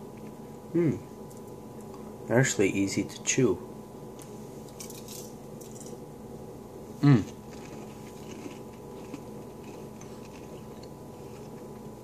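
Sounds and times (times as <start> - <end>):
electrical hum: 0.0 - 12.0
chewing candy: 7.0 - 11.9.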